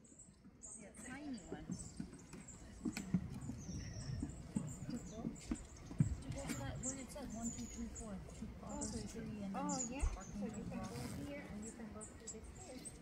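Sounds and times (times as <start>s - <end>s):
small birds calling: 0.0s - 13.0s
murmur of voices: 0.6s - 13.0s.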